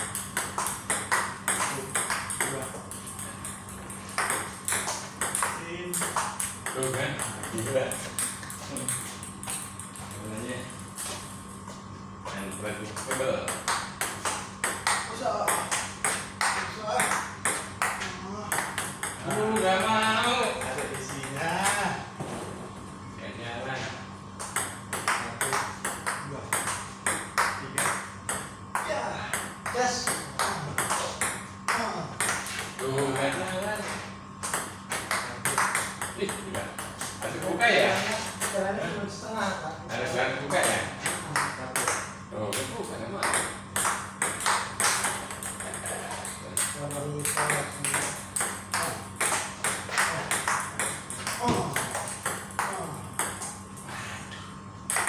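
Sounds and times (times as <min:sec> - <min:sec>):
men talking: 0:01.6 - 0:03.1, 0:05.3 - 0:09.2, 0:10.0 - 0:10.8, 0:12.2 - 0:13.6, 0:19.2 - 0:22.2, 0:23.1 - 0:24.1, 0:25.0 - 0:26.7, 0:31.8 - 0:34.1, 0:34.9 - 0:43.6, 0:45.5 - 0:49.1.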